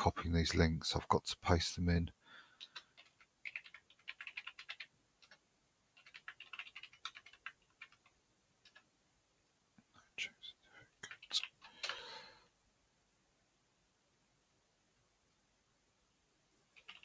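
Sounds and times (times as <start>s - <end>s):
computer keyboard typing: 2.6s - 8.9s, 11.0s - 12.0s, 16.8s - 17.0s.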